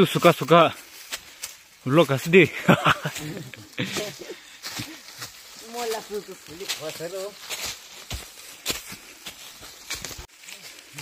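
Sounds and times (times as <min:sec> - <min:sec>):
footsteps on dry leaves: 0:00.0 - 0:11.0.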